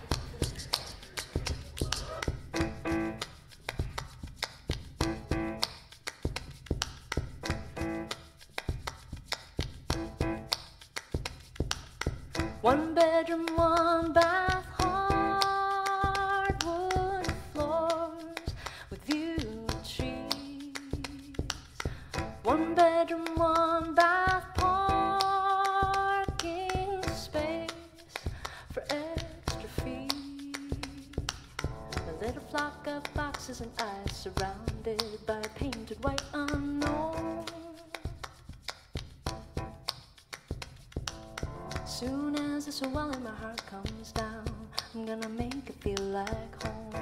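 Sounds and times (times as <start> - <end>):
sharp taps beat: 0.0 - 47.0
grand piano: 1.1 - 3.6, 5.0 - 5.7, 7.4 - 8.4, 9.9 - 10.6, 12.3 - 18.2, 22.0 - 28.0, 29.1 - 34.9, 36.0 - 38.0, 39.3 - 39.9, 41.1 - 43.4, 46.6 - 47.0
woman singing: 12.6 - 38.2, 41.9 - 47.0.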